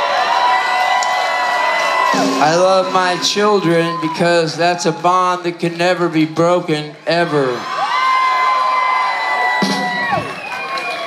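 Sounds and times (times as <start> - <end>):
concert crowd cheering: 0.0 - 11.0
long held whoops: 7.8 - 11.0.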